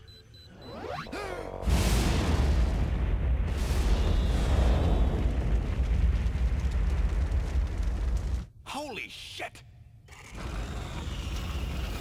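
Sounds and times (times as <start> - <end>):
explosion with heavy rumble: 1.6 - 8.5.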